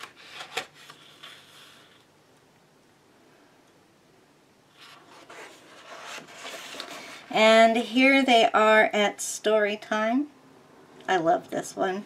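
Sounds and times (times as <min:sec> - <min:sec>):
paper rustling: 0:00.0 - 0:02.0, 0:04.8 - 0:07.3
soft paper rubbing: 0:00.0 - 0:02.0, 0:04.7 - 0:07.3.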